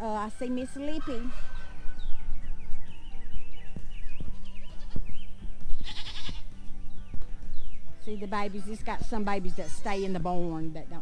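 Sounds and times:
background music: 0.0 - 11.0
goat bleating: 4.7 - 5.0, 5.8 - 6.5.

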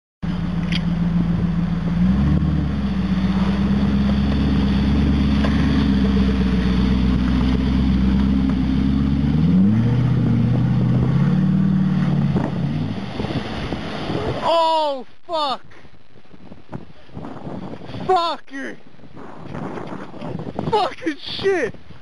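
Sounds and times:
car engine revving: 0.2 - 14.4.

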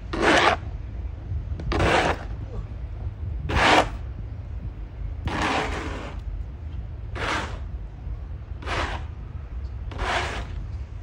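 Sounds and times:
snow shovel scraping pavement: 0.1 - 0.6, 1.8 - 2.3, 3.5 - 4.0, 5.3 - 6.2, 7.2 - 7.7, 8.6 - 9.1, 9.9 - 10.6.

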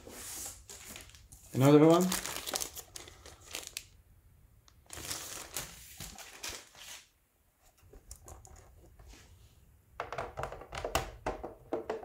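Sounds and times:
plastic bag crinkling: 0.7 - 4.0, 4.8 - 6.9.

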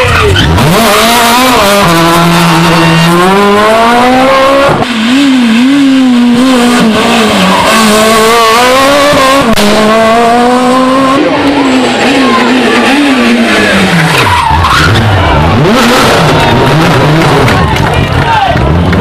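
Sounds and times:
rally car engine at full throttle: 0.0 - 19.0.

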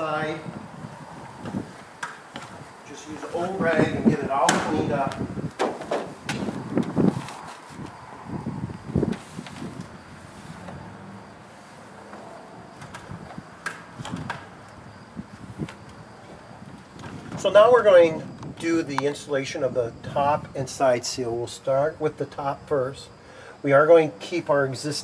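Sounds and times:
knocks and thuds on ladder: 3.8 - 6.6.

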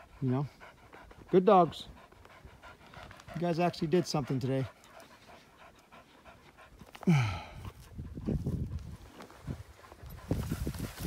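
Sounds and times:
dog panting: 0.0 - 11.0.

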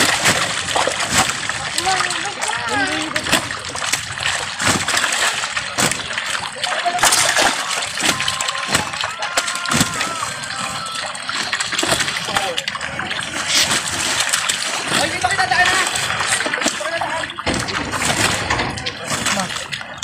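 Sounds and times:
water splashing and sloshing: 0.0 - 20.0
voices: 1.4 - 20.0.

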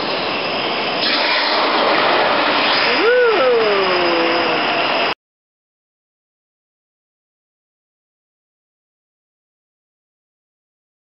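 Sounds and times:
gas flame roaring: 0.0 - 5.2
person exclaiming: 2.9 - 4.6.

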